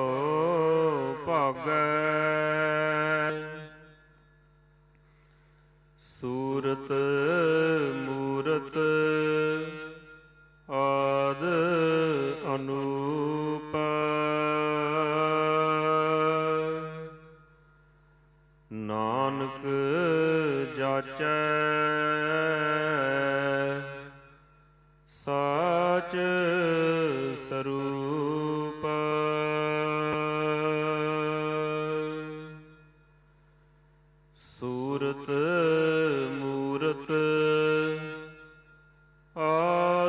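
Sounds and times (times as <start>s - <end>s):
person singing a hymn: 0.0s - 3.8s, 6.0s - 17.2s, 18.7s - 24.2s, 25.1s - 32.9s, 34.4s - 38.7s, 39.4s - 40.0s
person chanting a long note: 0.0s - 4.3s, 5.3s - 17.6s, 18.7s - 24.5s, 25.1s - 33.0s, 34.4s - 40.0s
faint held tone: 0.0s - 20.6s, 21.2s - 30.8s, 31.4s - 40.0s.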